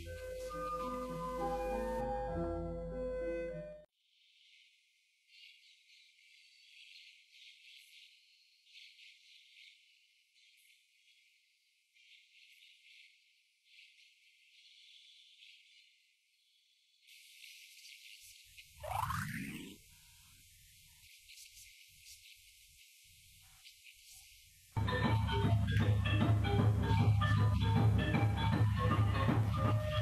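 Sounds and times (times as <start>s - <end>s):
piano music: 0.0s - 3.9s
faint high-pitched ticking and crackle: 4.2s - 24.8s.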